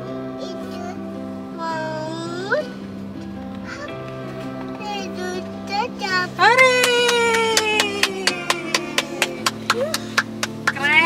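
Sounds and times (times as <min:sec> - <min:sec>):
hand claps steady beat: 0:06.6 - 0:11.0.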